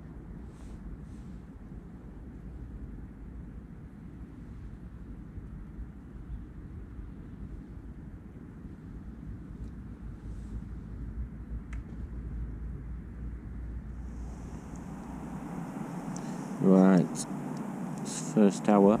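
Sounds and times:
wind buffeting microphone: 0:13.9 - 0:19.0.

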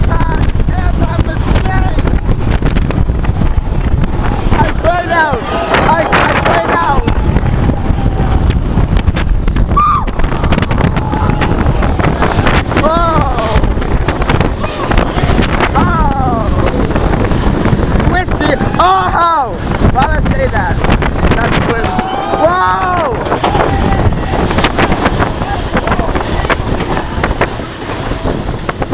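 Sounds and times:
wind rushing over microphone: 0:00.0 - 0:28.9
riders yelling: 0:03.2 - 0:08.7, 0:09.7 - 0:17.3, 0:17.9 - 0:20.2, 0:21.4 - 0:28.4.

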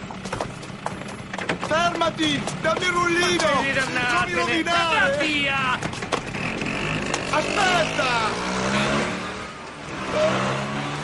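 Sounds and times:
car engine running: 0:00.0 - 0:08.4.

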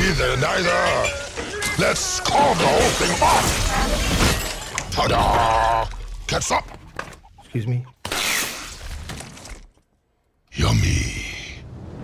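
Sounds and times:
crockery and food crashing: 0:00.2 - 0:05.6.

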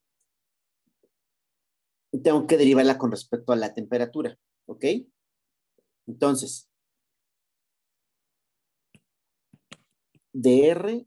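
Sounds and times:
stylus tapping tablet screen: 0:08.8 - 0:10.4.

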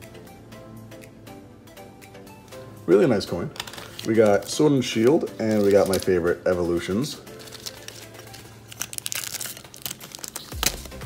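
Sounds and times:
foil wrapper crinkling: 0:03.5 - 0:11.0.

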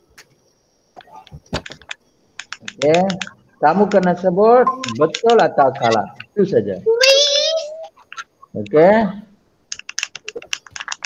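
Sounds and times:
computer keyboard typing: 0:01.2 - 0:06.3, 0:09.7 - 0:11.0.

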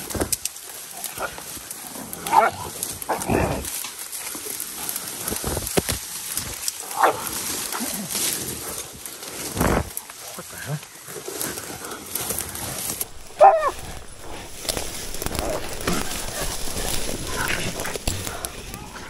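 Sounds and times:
leaves and branches rustling: 0:00.0 - 0:19.0.

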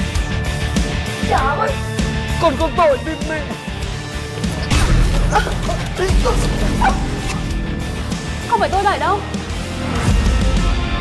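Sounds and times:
background music: 0:00.0 - 0:11.0
dog yelps: 0:06.7 - 0:07.4.

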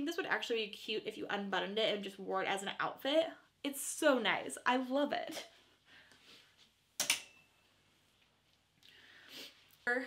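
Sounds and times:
hanger hook clicking on rail: 0:07.0 - 0:07.4
metallic ring: 0:07.0 - 0:07.6.

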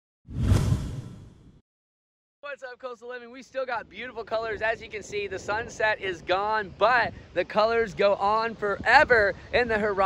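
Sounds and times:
deep whoosh: 0:00.3 - 0:01.6.

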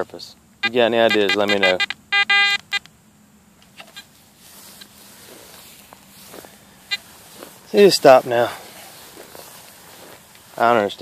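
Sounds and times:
metal detector beep: 0:00.6 - 0:02.9, 0:06.9 - 0:07.1
metal detector chatter: 0:00.6 - 0:02.9, 0:06.8 - 0:10.9.

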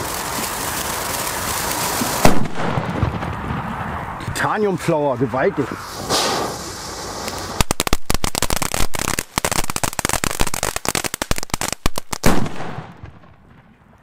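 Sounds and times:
firework fountain hissing: 0:00.0 - 0:03.4, 0:05.7 - 0:12.9
firework crackling: 0:00.0 - 0:04.2, 0:05.7 - 0:14.0
firework bang: 0:01.9 - 0:04.1, 0:05.8 - 0:10.7, 0:11.9 - 0:13.7.

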